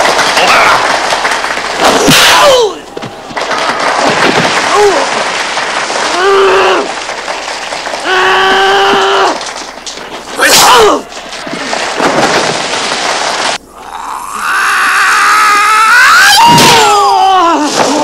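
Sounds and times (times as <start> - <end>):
man yelling: 10.4 - 11.0
man groaning: 13.7 - 16.0.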